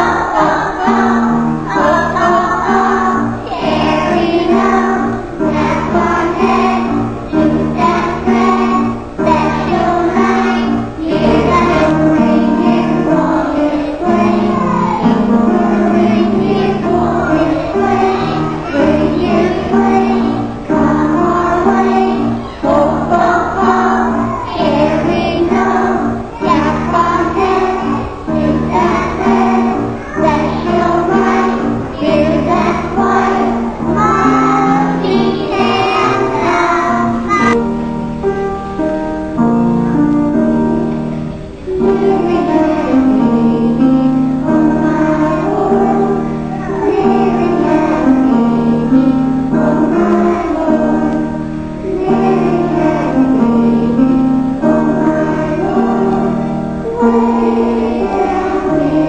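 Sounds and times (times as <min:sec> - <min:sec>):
young children singing: 0:00.0 - 0:59.0.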